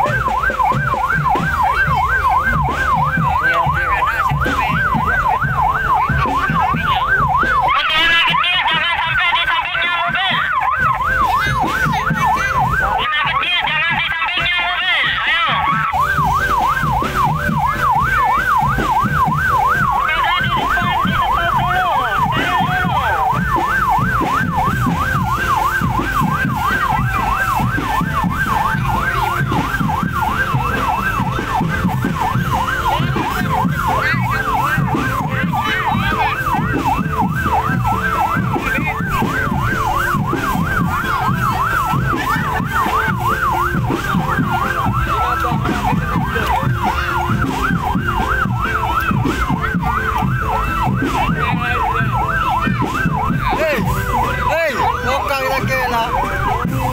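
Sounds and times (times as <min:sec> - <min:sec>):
dense low-pitched background: 0:00.0 - 0:56.9
fast warbling siren: 0:00.0 - 0:56.9.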